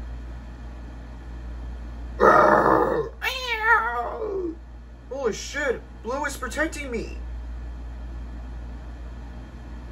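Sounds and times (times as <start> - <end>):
dinosaur roar: 2.2 - 3.3.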